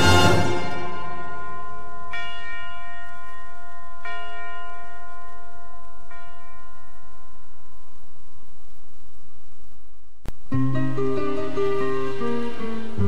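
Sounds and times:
bell ringing: 0:00.0 - 0:07.7.

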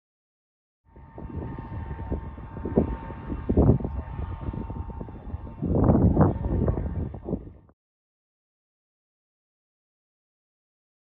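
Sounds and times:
steady machinery whine: 0:00.9 - 0:07.7.

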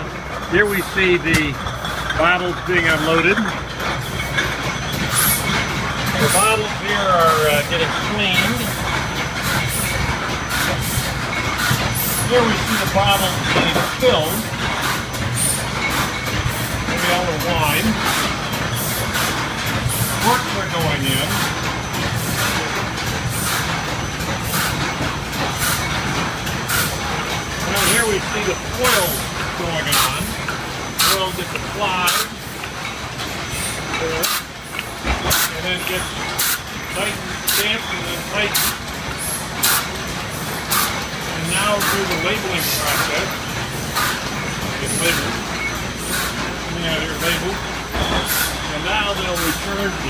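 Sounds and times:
bottling machine clatter: 0:00.0 - 0:50.0.

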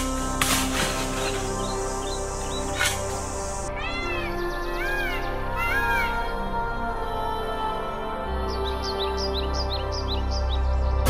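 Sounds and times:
background music: 0:00.0 - 0:11.0
animal cries rising and falling: 0:03.8 - 0:06.3.

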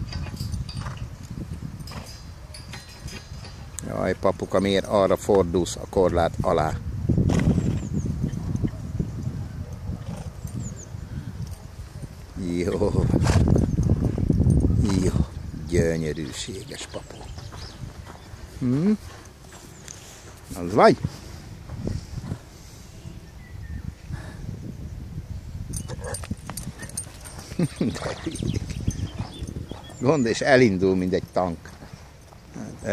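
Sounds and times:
horse rolling in sand: 0:00.0 - 0:03.7, 0:07.2 - 0:08.7, 0:09.6 - 0:15.6, 0:16.3 - 0:23.3, 0:25.6 - 0:32.9
hoof steps on sand: 0:16.9 - 0:22.5
faint bird chirps: 0:23.0 - 0:24.1, 0:27.6 - 0:30.5.

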